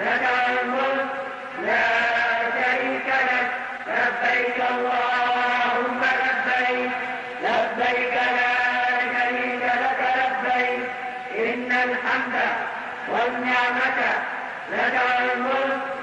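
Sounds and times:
man chanting: 0.0s - 16.0s.

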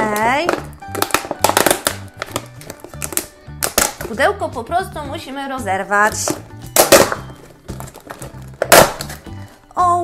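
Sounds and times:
plastic box clicking and crackling: 0.0s - 4.1s
background music with low beat: 0.0s - 10.0s.

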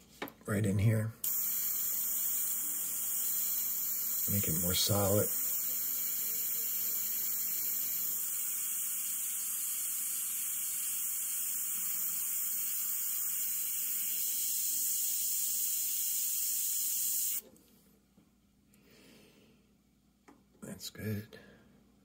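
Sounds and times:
airbrush spraying hiss: 1.2s - 17.4s.

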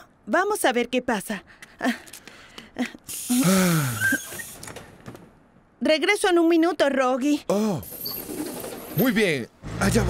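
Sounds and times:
bus door opening with air hiss: 3.1s - 4.9s.

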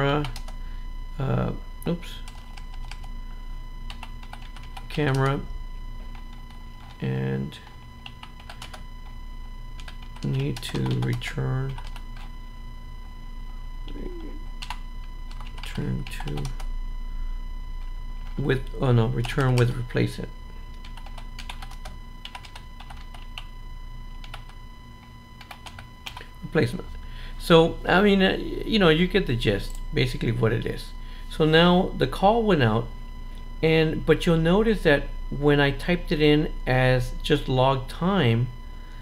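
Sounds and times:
computer keyboard typing: 0.2s - 0.5s, 2.2s - 3.1s, 3.9s - 5.4s, 8.0s - 8.8s, 9.8s - 12.3s, 14.6s - 16.7s, 20.8s - 23.5s, 24.2s - 24.6s, 25.4s - 26.3s.

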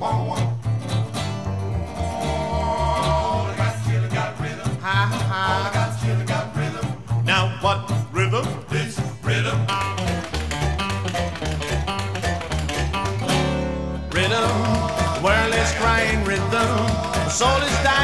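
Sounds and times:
strummed acoustic guitars: 0.0s - 18.0s
upright bass walking line: 0.0s - 18.0s.

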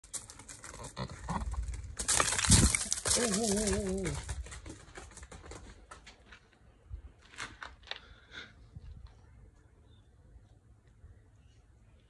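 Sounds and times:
goat hooves on gravel: 0.0s - 7.8s.

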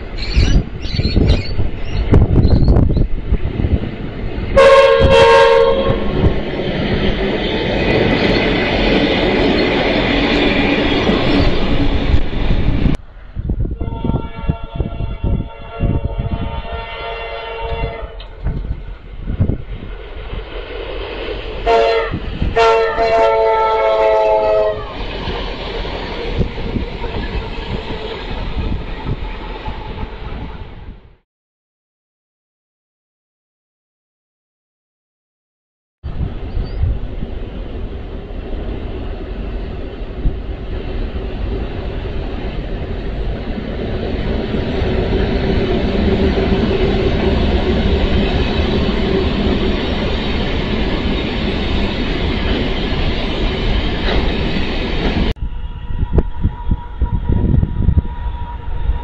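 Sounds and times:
train horn: 4.6s - 6.3s, 13.7s - 19.0s, 21.6s - 25.0s, 55.4s - 59.0s.

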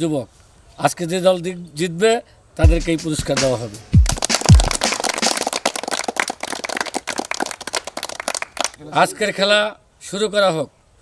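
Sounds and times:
people clapping: 4.0s - 8.8s.

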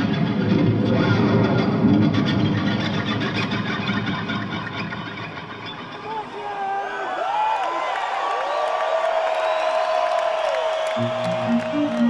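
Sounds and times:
distorted electric guitar solo: 11.0s - 12.0s.

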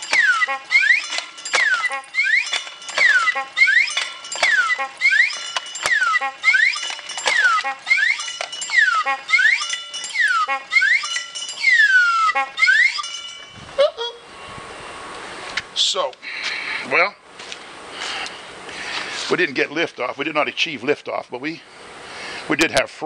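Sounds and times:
metallic clinks and rattles: 0.0s - 13.7s
mechanism squealing: 0.0s - 14.0s.

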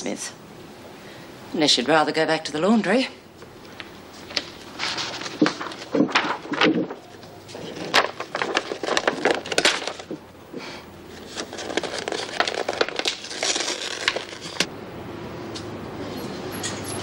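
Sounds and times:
books and papers handled on table: 3.4s - 10.2s, 11.1s - 14.7s.

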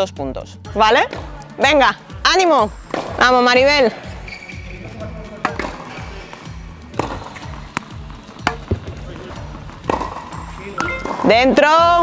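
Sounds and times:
background music with steady beat: 0.0s - 12.0s
tennis balls bouncing on court: 1.0s - 1.4s, 2.7s - 12.0s
tennis balls hit with rackets: 1.0s - 1.4s, 2.7s - 4.2s, 4.9s - 12.0s.

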